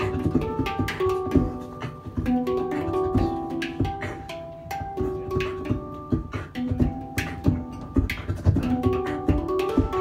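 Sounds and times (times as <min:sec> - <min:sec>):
beatboxing kicks and snares: 0:00.0 - 0:10.0
handpan melodic notes: 0:00.0 - 0:10.0.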